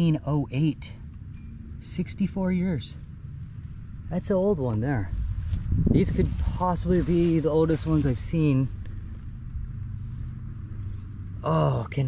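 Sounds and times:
insects trilling: 0.0s - 12.0s
low steady rumble: 0.0s - 12.0s.

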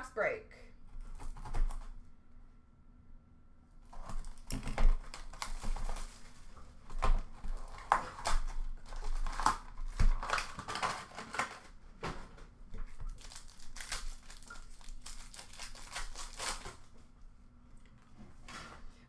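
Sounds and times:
cardboard box and foil packs handled: 3.9s - 17.0s.

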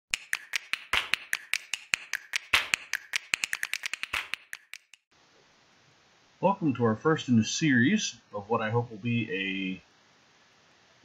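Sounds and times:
rapid sharp taps: 0.1s - 5.1s.

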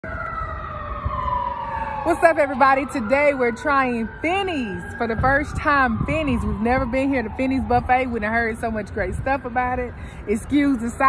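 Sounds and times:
emergency siren wailing: 0.0s - 11.0s.

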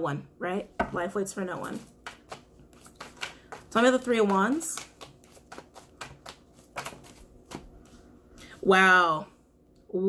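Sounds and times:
cards being shuffled: 1.6s - 8.0s.

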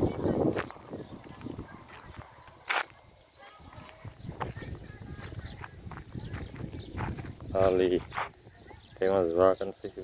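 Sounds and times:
footsteps on dirt path: 0.0s - 8.9s.

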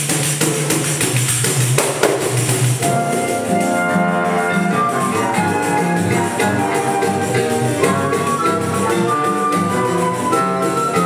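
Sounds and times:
jingling pandeiro rhythm: 0.0s - 11.0s
walking bass line: 1.9s - 11.0s
held wind instrument notes: 2.8s - 11.0s.

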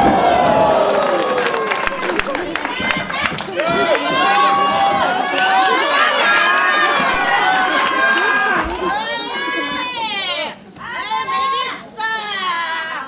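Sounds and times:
wrestling crowd shouting: 0.0s - 13.0s.

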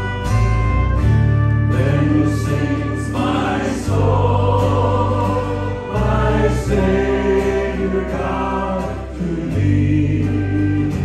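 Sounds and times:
instrumental accompaniment: 0.0s - 11.0s
sustained bass notes: 0.0s - 11.0s
worship team singing: 1.7s - 11.0s.

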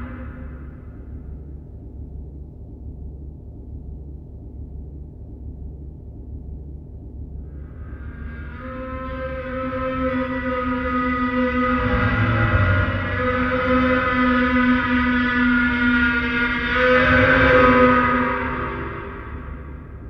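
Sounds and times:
processed gong drone: 0.0s - 2.1s, 7.4s - 20.0s
low rumble: 0.0s - 20.0s.

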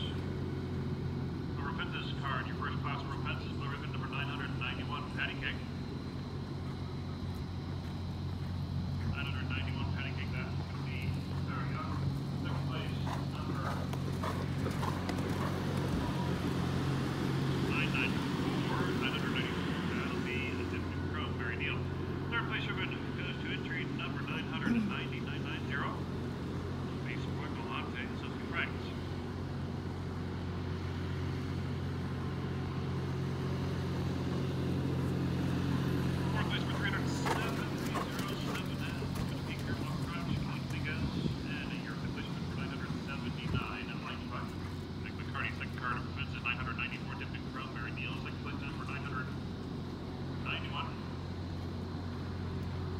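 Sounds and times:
low motor hum: 0.0s - 52.9s.

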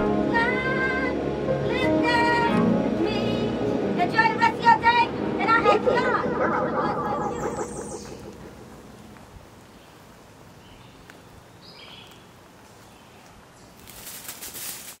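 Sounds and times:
song: 4.5s - 9.4s
forest ambience: 5.2s - 14.5s
crackling rustle: 12.0s - 15.0s.

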